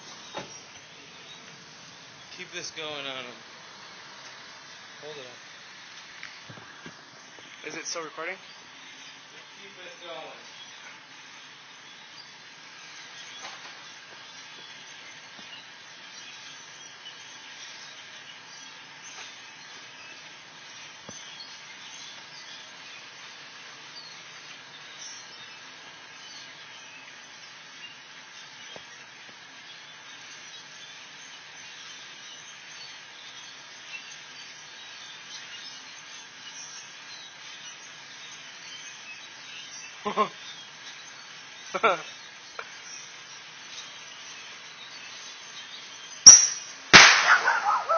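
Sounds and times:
flock of birds calling: 38.9 - 47.9.

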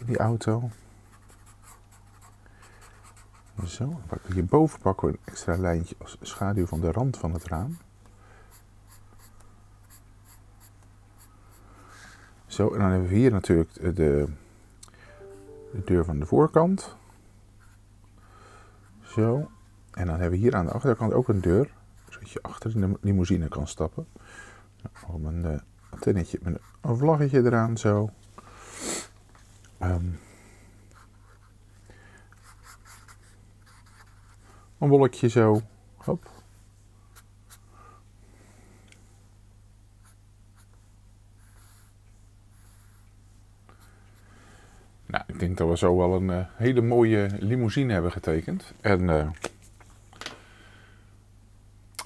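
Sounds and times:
marker pen scratching on paper: 1.1 - 3.8, 8.5 - 11.3, 32.4 - 34.4
marker scratching on paper: 8.5 - 11.3.

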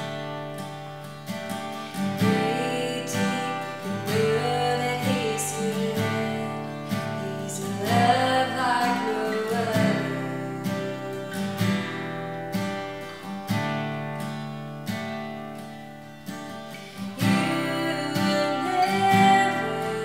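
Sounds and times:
acoustic guitar strumming: 0.0 - 20.0
woman singing: 2.0 - 12.4, 16.8 - 20.0.

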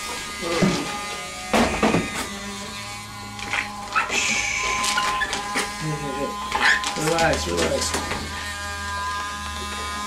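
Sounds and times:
electric clippers humming: 0.0 - 10.0.

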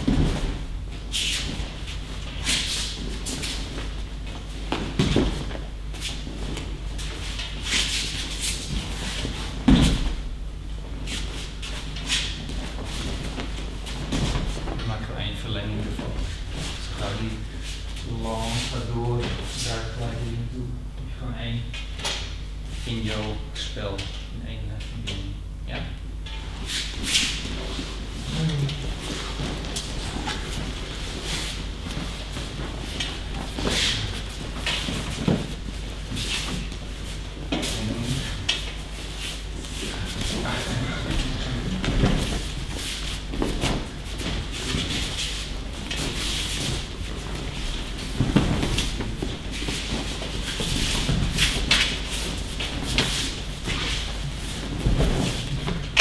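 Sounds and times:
bodies thudding on mats: 0.0 - 2.0, 3.0 - 6.8, 8.6 - 10.4, 12.4 - 14.8, 27.4 - 37.7, 39.9 - 56.0
uniforms rustling: 26.5 - 56.0
bare feet shuffling: 26.6 - 56.0.

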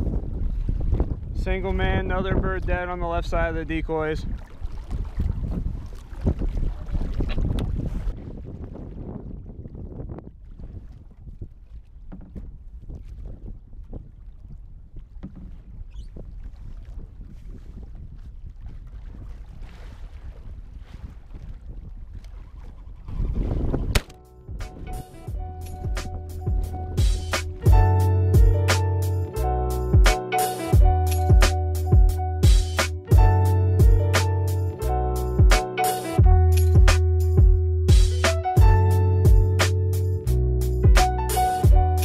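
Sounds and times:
waves lapping against boat hull: 0.0 - 27.9
wind buffeting microphone: 0.0 - 28.7
plucked guitar music with beat: 24.2 - 42.0.

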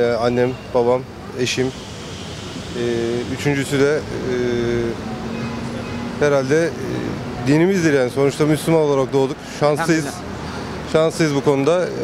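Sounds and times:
man's drawn-out hesitation sound: 0.0 - 5.1, 6.1 - 12.0
city traffic noise: 0.0 - 12.0.

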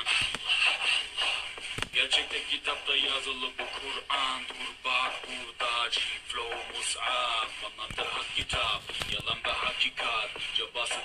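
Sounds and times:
layered male vocals: 1.9 - 11.0.

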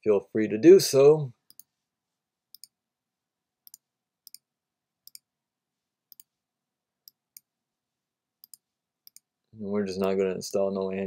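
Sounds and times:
faint computer mouse clicks: 2.5 - 2.8, 5.1 - 5.3.

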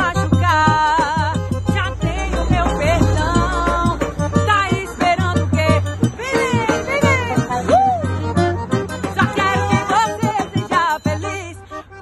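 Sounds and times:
accordion: 0.0 - 12.0
saxophone melody: 6.2 - 12.0.

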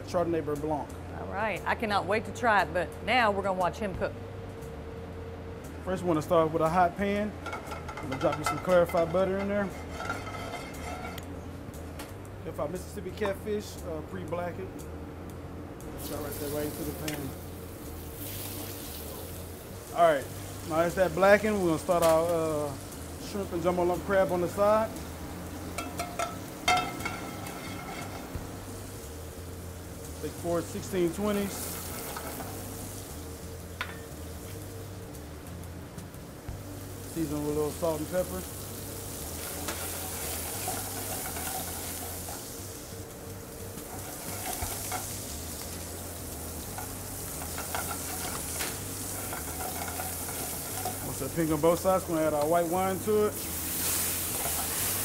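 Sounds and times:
low kitchen hum: 0.0 - 55.0
shrimp sizzling in a pan: 6.6 - 11.9, 16.0 - 55.0.

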